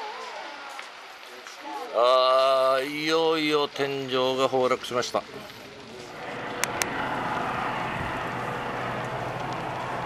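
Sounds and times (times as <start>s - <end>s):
roar of building burning: 5.2s - 10.0s
low steady hum: 6.1s - 10.0s.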